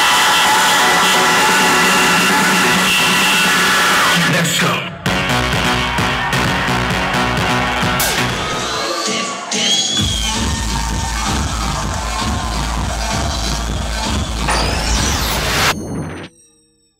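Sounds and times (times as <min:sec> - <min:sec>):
electronic house music: 0:00.0 - 0:16.3.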